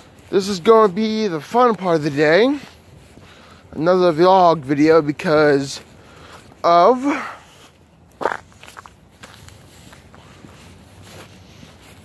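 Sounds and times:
footsteps walking: 0.0 - 12.0
scuff: 7.2 - 12.0.

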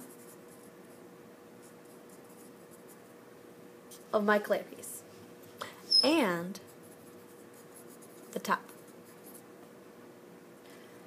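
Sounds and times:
pencil scratching on paper: 0.0 - 0.7, 6.7 - 9.4.

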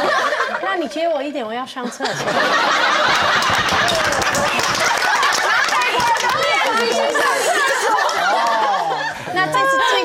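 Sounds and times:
people laughing and chattering: 1.9 - 10.0
hand clapping: 3.1 - 8.7.

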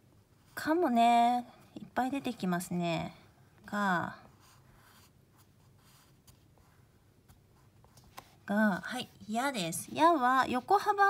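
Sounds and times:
pencil scratching on paper: 4.3 - 6.8.

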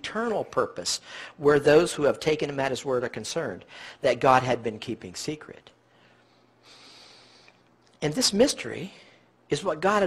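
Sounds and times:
man breathing in: 5.9 - 7.7
man speaking: 8.0 - 10.0.

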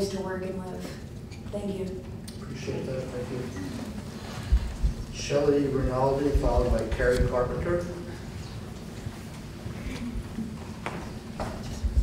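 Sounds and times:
footsteps: 3.6 - 5.2, 8.2 - 12.0.

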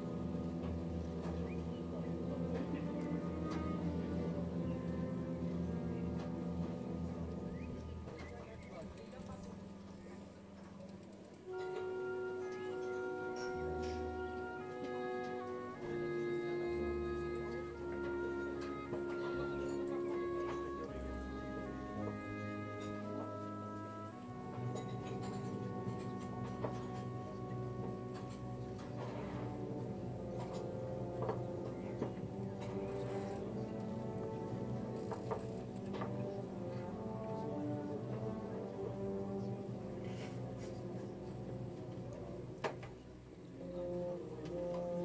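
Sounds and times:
wind band held chord: 0.0 - 45.0.

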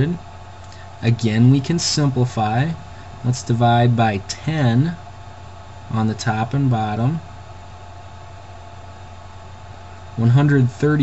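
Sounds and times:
low hum: 0.0 - 11.0
steady hiss: 0.0 - 11.0.

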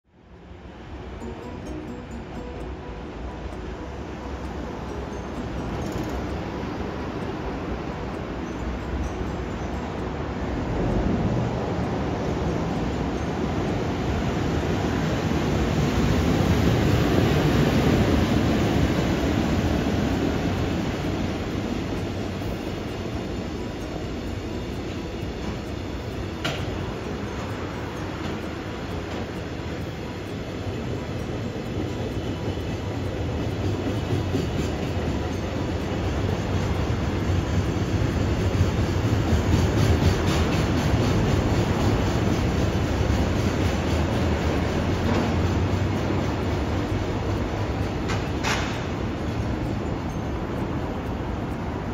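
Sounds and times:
train wheels rumbling on rails: 0.2 - 51.9.

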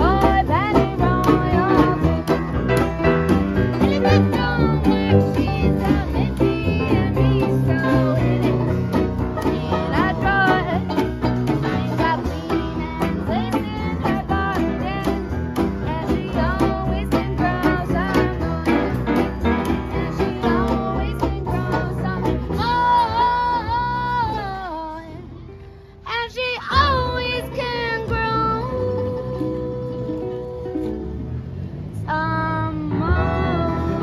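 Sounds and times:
upright piano: 0.0 - 24.6
double bass: 0.0 - 34.0
guitar: 0.0 - 34.0
trombone: 2.7 - 5.0
clarinet: 3.7 - 5.2.

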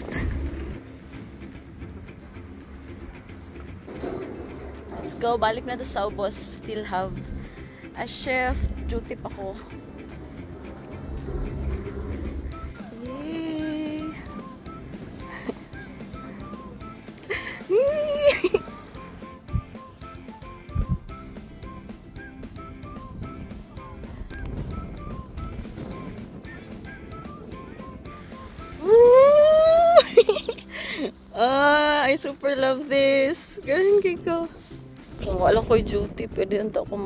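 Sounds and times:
woman whooping with delight: 17.7 - 18.6, 28.8 - 30.3.

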